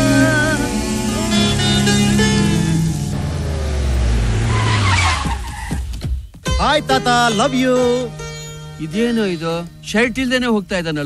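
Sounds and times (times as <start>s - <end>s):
string music with gliding notes: 0.0s - 4.3s, 6.4s - 11.0s
car rushing past: 0.0s - 5.9s
tyre skid: 4.0s - 6.4s.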